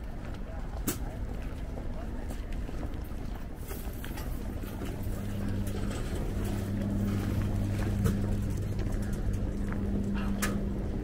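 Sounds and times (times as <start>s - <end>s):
low mechanical hum: 0.0s - 11.0s
street noise: 0.0s - 11.0s.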